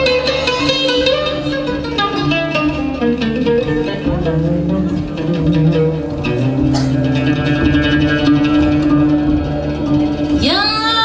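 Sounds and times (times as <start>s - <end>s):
upright double bass: 0.0s - 10.6s
plucked string melody: 0.0s - 11.0s.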